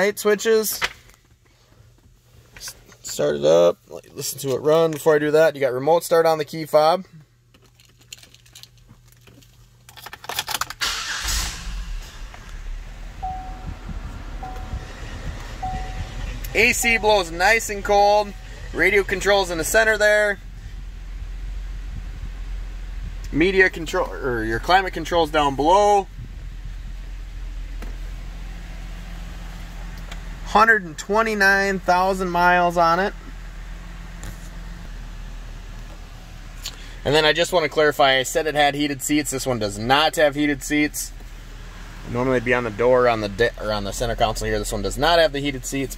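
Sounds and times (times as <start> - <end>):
car engine cranking and idling: 0.0 - 45.9
keys rattling: 7.5 - 10.8
climate-control fan blowing: 11.2 - 30.2
dash warning chime beeps: 13.2 - 18.8.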